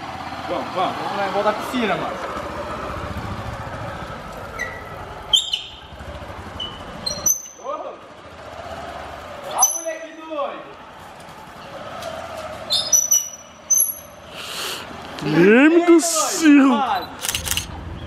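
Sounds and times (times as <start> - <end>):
motorcycle engine running: 0.0 - 9.7.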